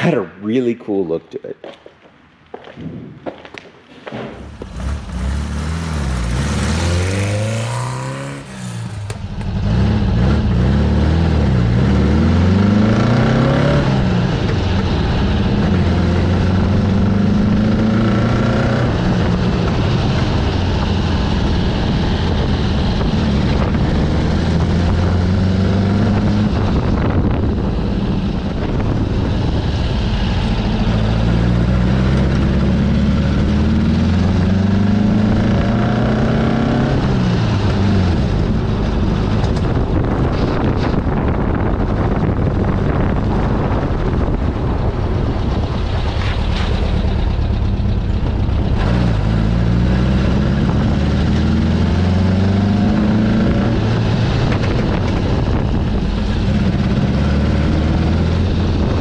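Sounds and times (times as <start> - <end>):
car engine accelerating: 4.3 - 59.0.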